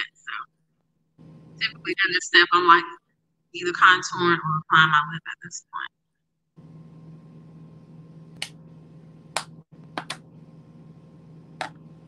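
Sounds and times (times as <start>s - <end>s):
low electrical hum and hiss: 0.3s - 2.8s, 6.6s - 12.0s.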